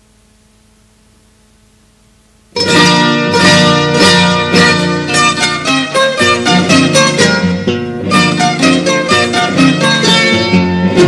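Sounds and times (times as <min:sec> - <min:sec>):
faint hum: 0:00.0 - 0:08.5
plucked string ensemble music: 0:02.6 - 0:11.0.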